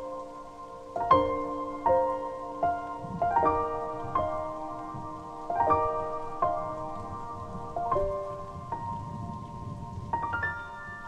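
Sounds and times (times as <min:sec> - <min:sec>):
falling rain: 0:00.0 - 0:11.0
solo piano waltz: 0:00.0 - 0:11.0.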